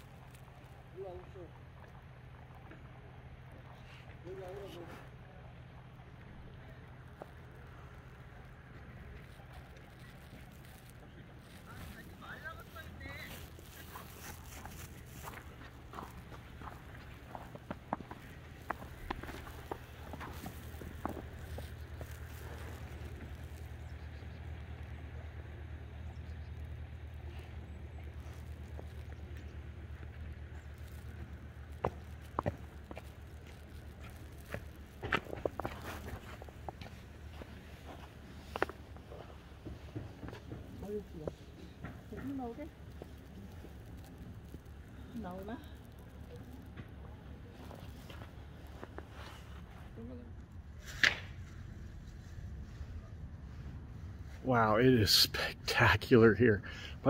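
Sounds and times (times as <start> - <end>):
faint voices: 0.0 - 57.0
steady low hum: 0.0 - 57.0
footsteps crunching on snow: 7.2 - 24.2, 27.6 - 45.2, 45.8 - 50.0.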